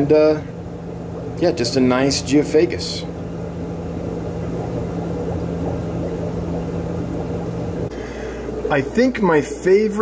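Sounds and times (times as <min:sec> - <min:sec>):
mechanical equipment hum: 0:00.0 - 0:10.0.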